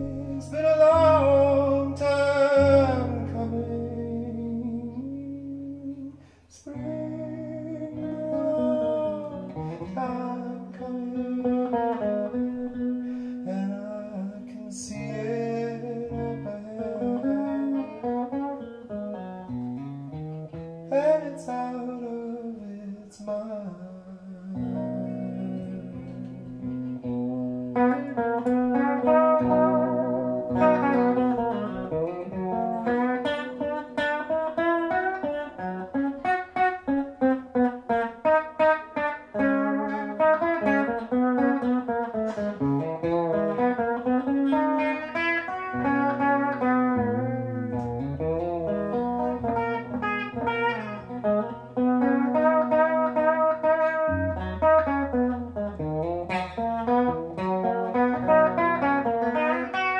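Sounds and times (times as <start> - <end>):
man singing: 0.0 - 18.7, 20.9 - 26.8, 27.7 - 47.8
plucked electric guitar: 0.0 - 59.9.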